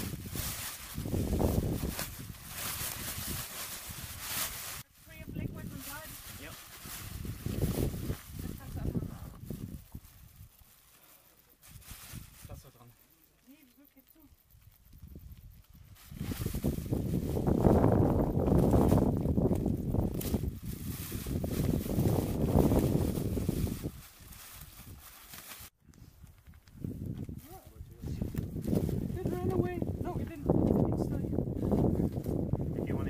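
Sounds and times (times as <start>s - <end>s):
foil blanket crinkling: 0.0s - 14.0s, 15.7s - 25.8s.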